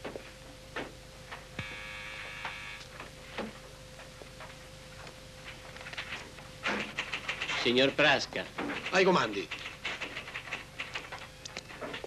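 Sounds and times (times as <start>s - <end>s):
steady hum: 0.0s - 12.0s
short buzzing: 1.6s - 2.8s.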